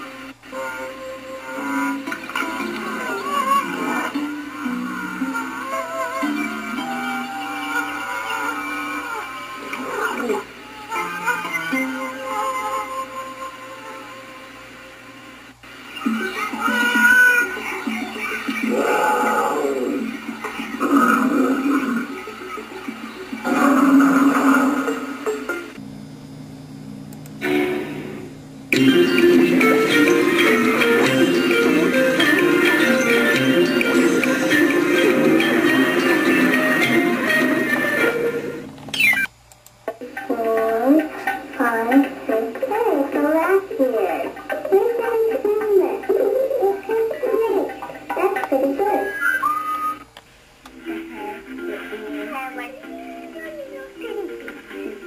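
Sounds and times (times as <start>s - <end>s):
jingle music from television: 0.0s - 15.3s, 28.7s - 39.3s, 43.3s - 50.1s, 50.7s - 55.0s
faint steady hum: 0.0s - 55.0s
cartoon big cat roars: 18.7s - 20.1s, 23.4s - 25.0s.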